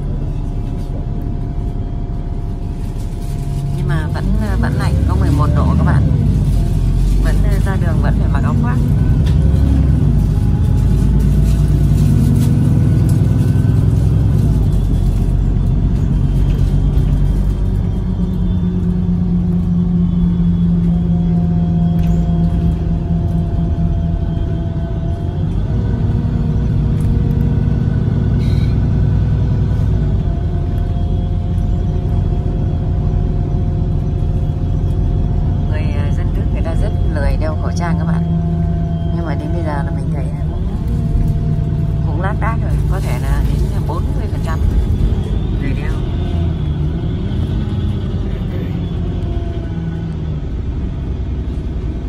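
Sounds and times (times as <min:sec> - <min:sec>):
bus engine drone: 0:00.0 - 0:52.0
road rumble: 0:00.0 - 0:52.0.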